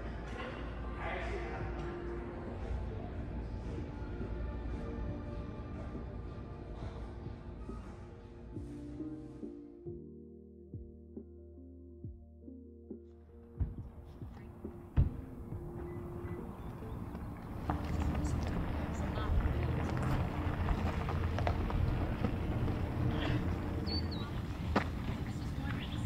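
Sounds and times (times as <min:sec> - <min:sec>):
soft music: 0:00.0 - 0:26.0
faint distant voices: 0:14.0 - 0:26.0
high chirp: 0:23.8 - 0:24.5.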